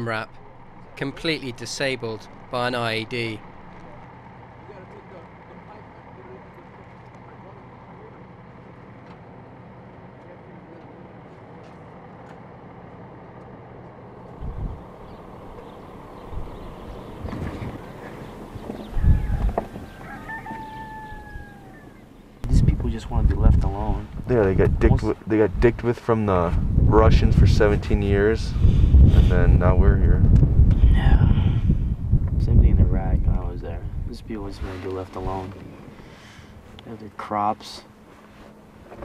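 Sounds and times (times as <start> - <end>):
outdoor ambience with low hum: 0.0 - 39.0
rooster crowing: 18.6 - 22.2.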